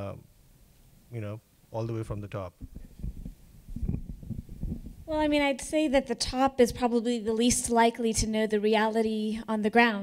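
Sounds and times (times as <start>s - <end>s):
microphone handling noise: 2.5s - 5.4s.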